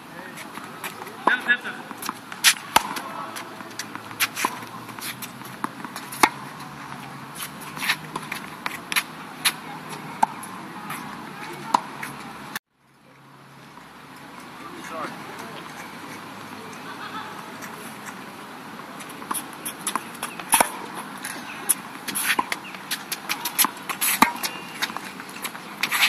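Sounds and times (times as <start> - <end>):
traffic hum: 0.0 - 26.0
tennis ball hits and bounces: 0.3 - 12.5, 19.0 - 26.0.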